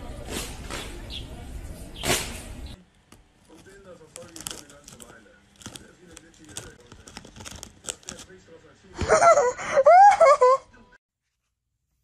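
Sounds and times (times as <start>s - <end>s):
crisp packet crinkling: 3.5s - 8.3s.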